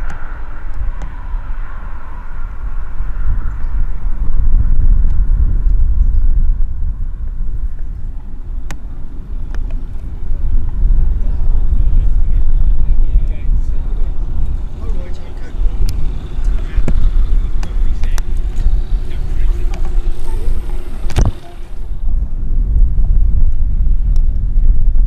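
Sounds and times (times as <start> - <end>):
wind rumble on microphone: 0.0 - 25.0.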